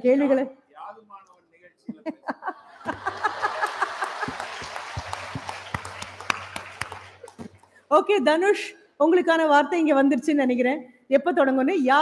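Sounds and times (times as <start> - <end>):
audience applause: 2.8 - 7.7.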